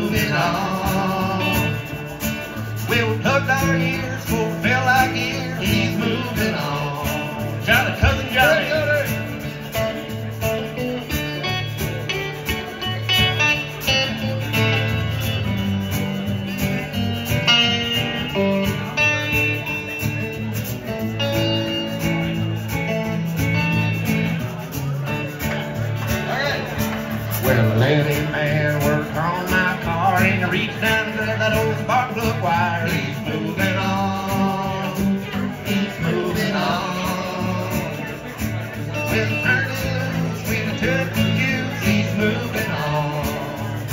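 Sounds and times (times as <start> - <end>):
country band playing: 0.0 - 43.9
electric guitar: 0.0 - 43.9
resonator guitar: 0.0 - 43.9.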